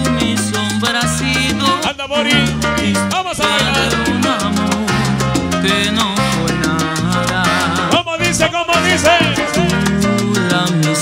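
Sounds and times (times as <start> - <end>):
bass line: 0.0 - 11.0
salsa music over sound system: 0.0 - 11.0.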